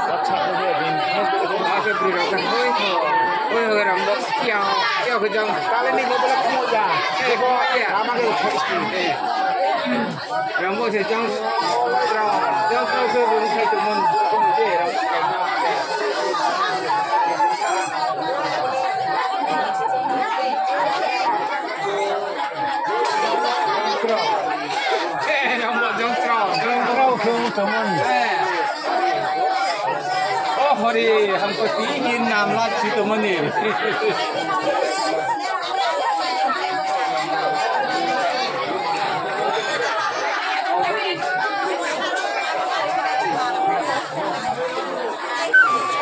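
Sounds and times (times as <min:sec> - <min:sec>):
people chattering: 0:00.0 - 0:46.0
flute holding long note: 0:45.5 - 0:46.0.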